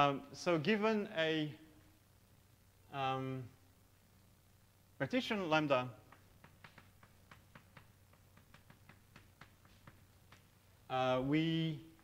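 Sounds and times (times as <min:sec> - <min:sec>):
chalk tapping on blackboard: 0:06.0 - 0:10.6.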